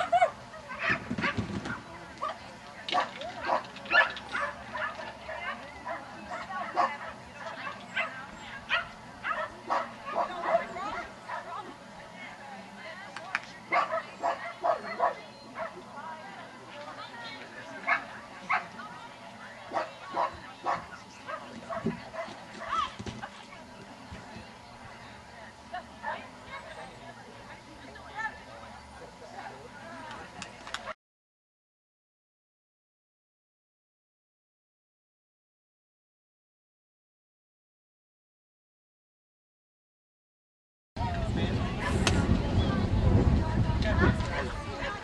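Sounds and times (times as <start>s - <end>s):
dogs barking and yipping: 0.0s - 11.6s, 13.7s - 15.8s, 17.8s - 18.8s, 19.7s - 22.9s
voices in background: 0.0s - 31.0s, 41.0s - 45.0s.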